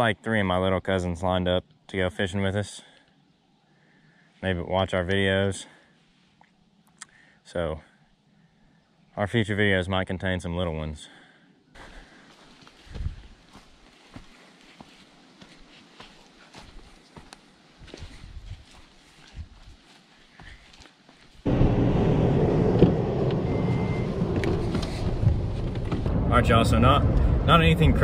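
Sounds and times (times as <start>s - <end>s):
footsteps on dirt and grass: 11.8s - 21.5s
loud steady vehicle interior noise: 21.5s - 28.0s
short high beep: 23.4s - 24.2s.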